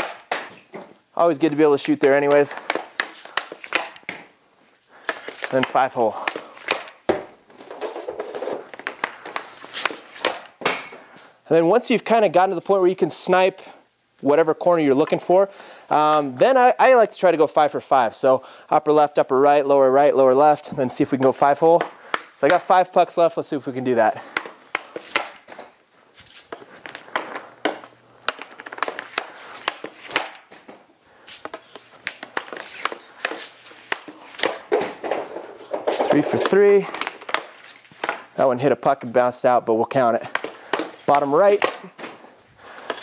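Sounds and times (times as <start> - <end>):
puck clacks: 0.0 - 4.4, 5.0 - 11.1, 20.9 - 23.0, 24.1 - 38.4, 40.2 - 43.0
hockey stick scraping pad: 0.0 - 11.3, 24.1 - 38.4, 40.3 - 43.0.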